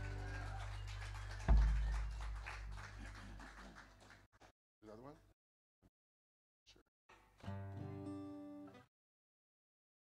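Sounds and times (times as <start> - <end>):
deep thump through sound system: 1.4 - 2.7.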